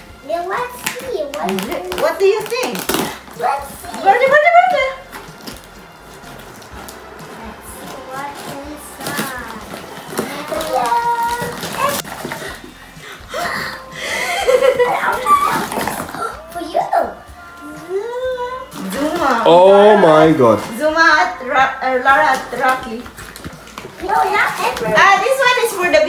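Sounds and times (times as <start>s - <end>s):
packaging rustling: 0.0s - 17.0s, 22.1s - 26.0s
children talking and exclaiming: 0.0s - 26.0s.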